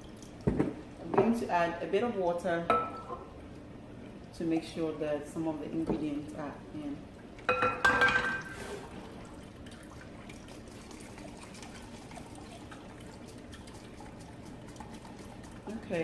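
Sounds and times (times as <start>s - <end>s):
liquid dripping through strainer: 0.0s - 0.6s, 9.3s - 16.0s.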